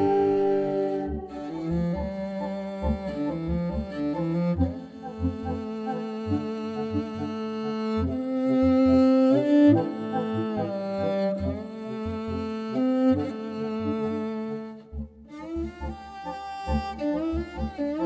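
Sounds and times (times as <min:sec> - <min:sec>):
low pulsing bass: 0:00.0 - 0:08.2, 0:09.6 - 0:18.0
bowed fiddle long notes: 0:00.0 - 0:18.0.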